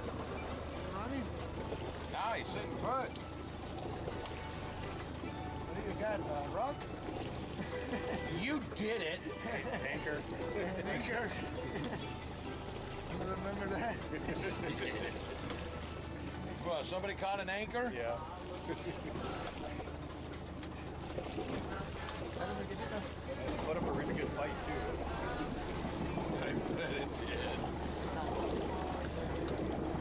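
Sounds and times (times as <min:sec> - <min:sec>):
boat engine hum: 0:00.0 - 0:30.0.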